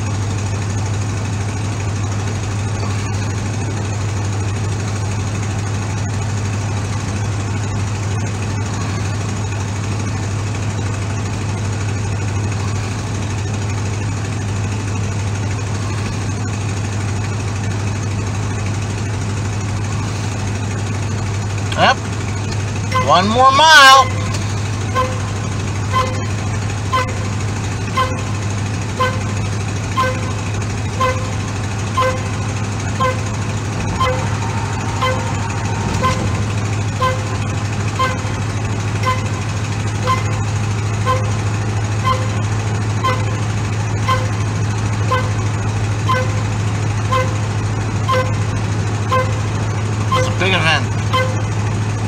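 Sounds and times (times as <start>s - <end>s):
pickup engine and road noise: 0.0s - 52.0s.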